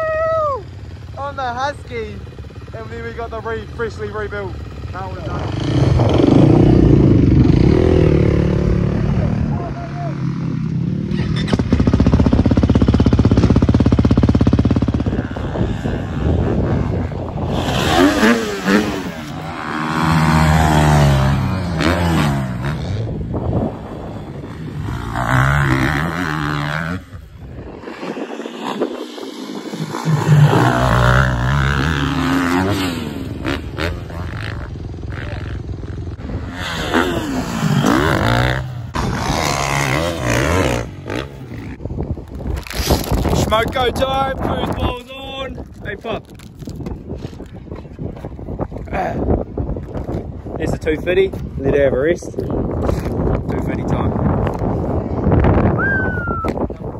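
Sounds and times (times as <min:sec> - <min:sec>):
dirt bike engine revving: 0:00.8 - 0:41.8.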